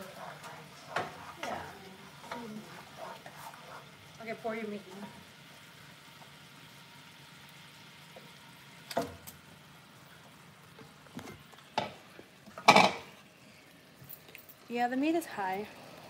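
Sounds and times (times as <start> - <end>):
meat sizzling in frying pan: 0.0 - 14.0.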